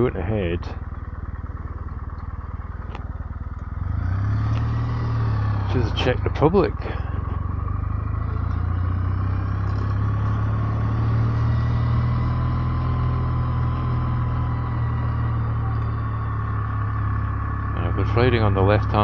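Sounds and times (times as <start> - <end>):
motorcycle engine rumbling: 0.0 - 19.0.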